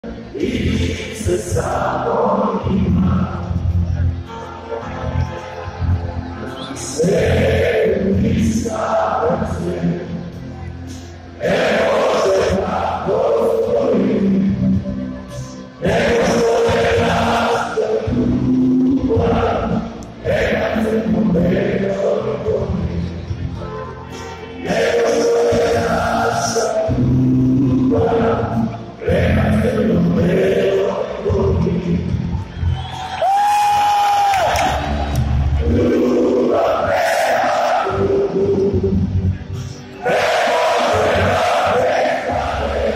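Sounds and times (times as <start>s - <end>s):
crowd singing and chanting: 0.0s - 33.2s, 34.3s - 42.9s.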